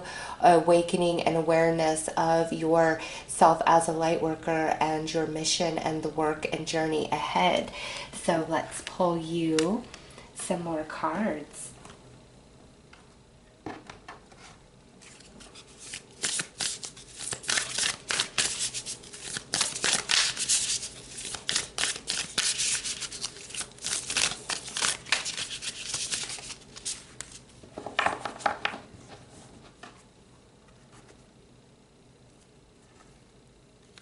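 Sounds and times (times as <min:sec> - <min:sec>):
cards being shuffled: 0:15.0 - 0:27.4.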